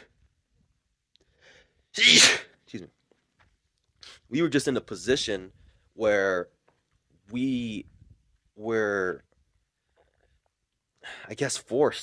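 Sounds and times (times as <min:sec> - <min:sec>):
man sneezing: 0:02.0 - 0:02.5.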